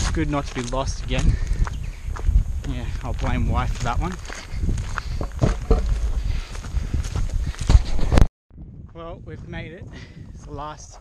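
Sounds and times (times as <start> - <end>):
footsteps crunching on gravel: 0.0 - 8.0
wind rumble on microphone: 0.0 - 11.0.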